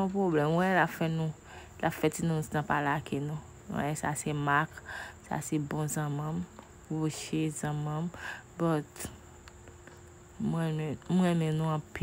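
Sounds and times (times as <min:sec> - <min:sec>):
faint high-pitched whine: 0:00.0 - 0:12.0.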